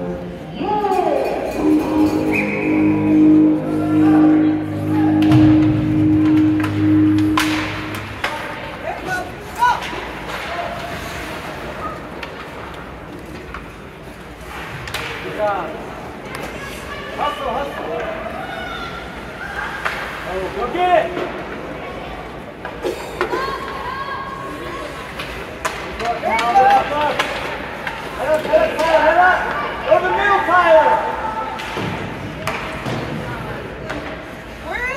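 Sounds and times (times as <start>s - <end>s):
players and spectators shouting: 0.6s - 7.2s
hockey sticks and puck clacking: 5.2s - 16.9s, 19.7s - 21.7s, 24.9s - 34.6s.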